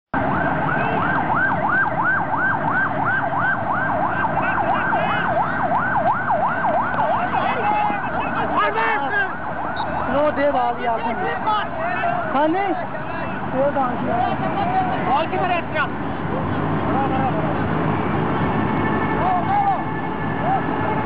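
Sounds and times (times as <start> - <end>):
siren sweeping up and down: 0.2 - 11.7
voices: 3.5 - 21.0.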